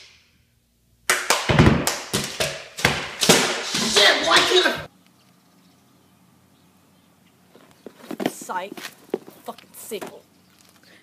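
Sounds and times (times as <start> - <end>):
punchy drum hits: 1.5 - 4.1.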